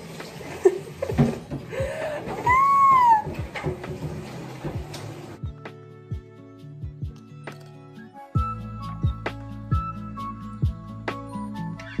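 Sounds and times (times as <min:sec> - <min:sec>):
soft background music: 0:00.1 - 0:12.0.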